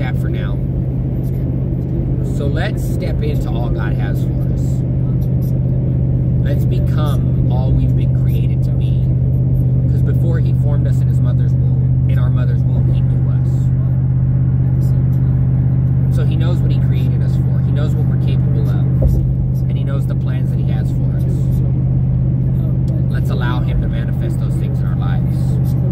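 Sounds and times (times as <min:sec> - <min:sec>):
man talking: 0:00.0 - 0:01.5, 0:02.2 - 0:05.7, 0:06.4 - 0:14.0, 0:16.1 - 0:21.8, 0:22.5 - 0:25.9
vehicle road and engine noise: 0:00.0 - 0:25.9
short thump: 0:19.0 - 0:19.4.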